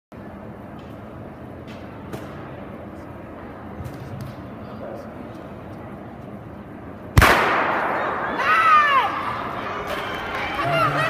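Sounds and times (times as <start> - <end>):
low background noise: 0.1 - 11.0.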